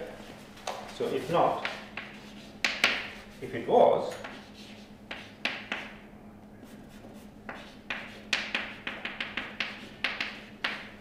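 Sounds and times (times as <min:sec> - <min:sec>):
chalk tapping on blackboard: 0:00.7 - 0:03.4, 0:04.1 - 0:06.0, 0:06.6 - 0:11.0.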